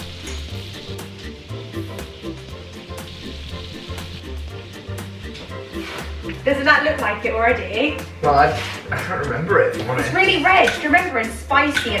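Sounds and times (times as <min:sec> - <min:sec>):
butter sizzling in a frying pan: 0:00.0 - 0:09.0, 0:09.9 - 0:12.0
background music with bass beat: 0:00.0 - 0:12.0.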